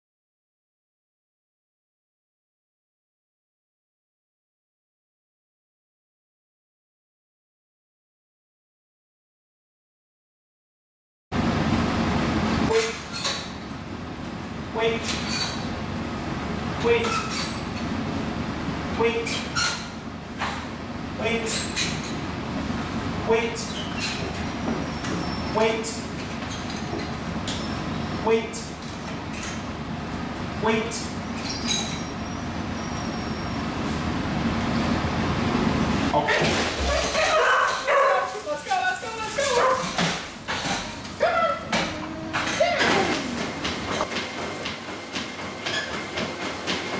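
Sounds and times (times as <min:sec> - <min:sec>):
dogs barking and whining: 0:36.2 - 0:44.0
person speaking a command: 0:38.1 - 0:39.8.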